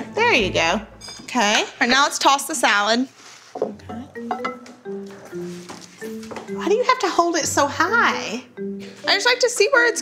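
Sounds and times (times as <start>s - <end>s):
light background music: 0.0s - 2.3s, 3.6s - 10.0s.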